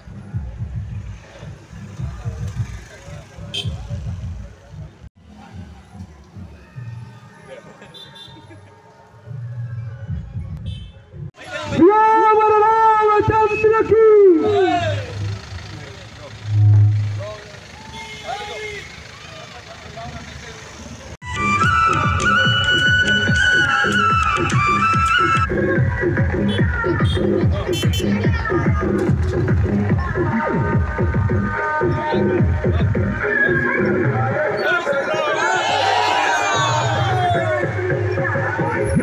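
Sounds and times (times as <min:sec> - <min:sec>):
motorcycle engines rumbling: 0:00.0 - 0:11.9, 0:12.7 - 0:39.0
crowd voices: 0:00.0 - 0:39.0
indistinct voices: 0:14.4 - 0:21.2
vehicle engine running: 0:14.4 - 0:21.2
brief high-pitched tone: 0:16.4 - 0:17.4
low rumble: 0:16.4 - 0:17.4.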